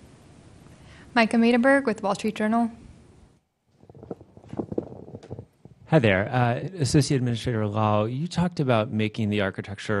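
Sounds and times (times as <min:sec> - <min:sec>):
microphone handling clicks: 0:03.7 - 0:05.9.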